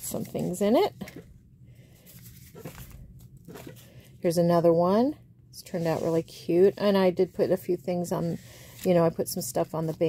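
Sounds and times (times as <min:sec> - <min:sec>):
paper cards rustling: 0:01.0 - 0:03.9.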